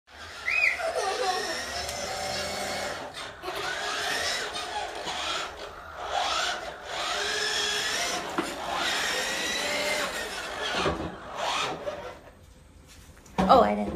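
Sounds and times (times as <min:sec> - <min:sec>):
electric motors whining: 0:00.1 - 0:12.4
wheels rolling on wooden floor: 0:00.1 - 0:12.4.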